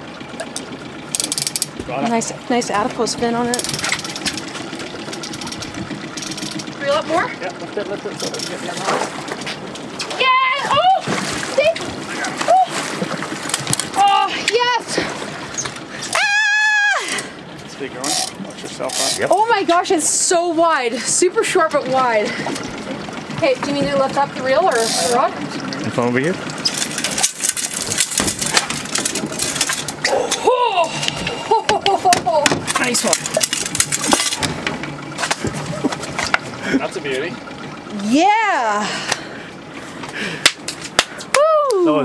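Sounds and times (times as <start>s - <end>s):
water splashing: 0.0s - 42.0s
person whooping: 12.4s - 12.8s, 16.1s - 17.3s, 30.1s - 31.7s, 41.3s - 42.0s
people crying out excitedly: 16.0s - 17.5s.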